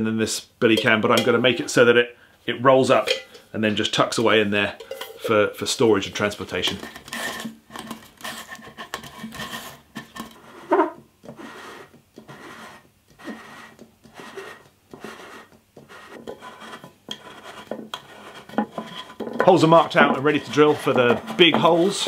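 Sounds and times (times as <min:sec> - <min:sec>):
metal can scraping on wood: 0:06.2 - 0:22.0.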